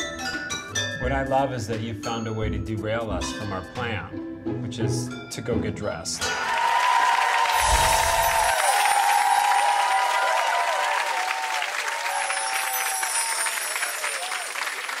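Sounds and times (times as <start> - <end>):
music: 0.0 - 10.1
audience applauding: 6.2 - 15.0.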